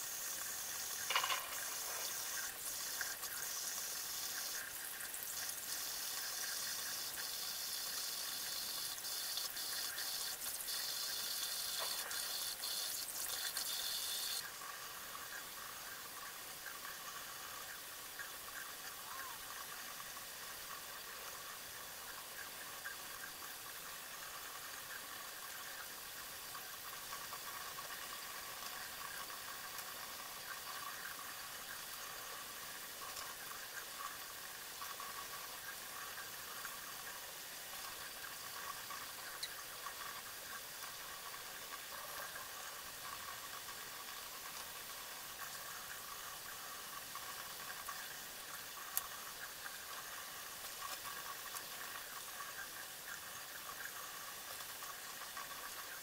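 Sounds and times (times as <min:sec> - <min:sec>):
faucet running into a sink: 0:00.0 - 0:56.0.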